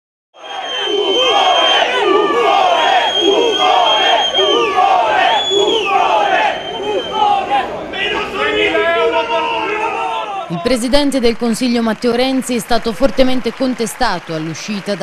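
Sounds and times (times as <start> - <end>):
protesters chanting: 0.4 - 10.6.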